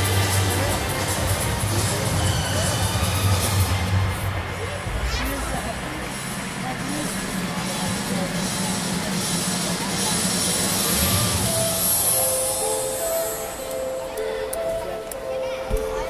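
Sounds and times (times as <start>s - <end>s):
music over loudspeakers: 0.0s - 16.0s
spectators chatting: 0.0s - 16.0s.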